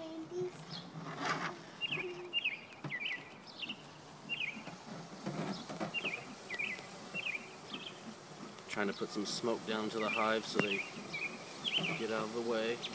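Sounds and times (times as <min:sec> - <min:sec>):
low outdoor noise: 0:00.0 - 0:12.9
songbird chirping: 0:00.0 - 0:12.9.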